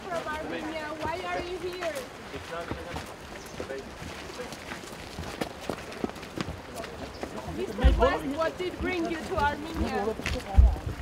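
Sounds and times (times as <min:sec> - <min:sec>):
footsteps on cobblestones: 0:00.0 - 0:11.0.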